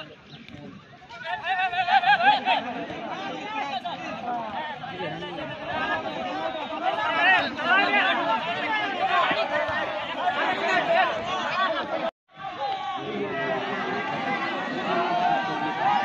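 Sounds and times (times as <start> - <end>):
spectators chattering and calling: 0.0 - 16.0.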